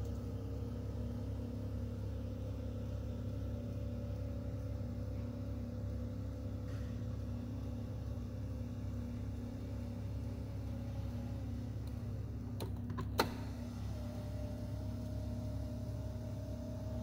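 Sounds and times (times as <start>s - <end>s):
electric seat motor humming: 0.0s - 17.0s.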